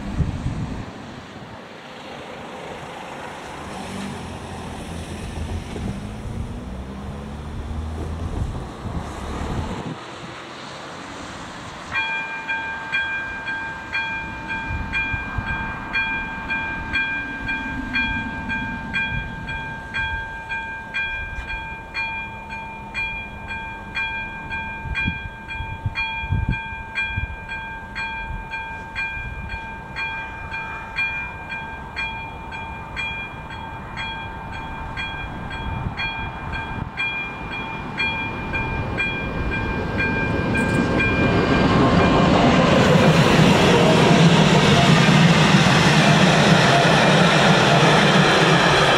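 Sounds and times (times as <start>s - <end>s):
train rumble: 0.0s - 48.9s
level crossing warning bell: 11.9s - 42.8s.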